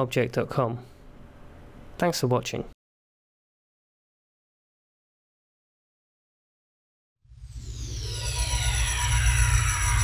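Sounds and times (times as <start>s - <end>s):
deep synth rumble: 7.3s - 10.0s
falling sweeping tones: 7.3s - 10.0s.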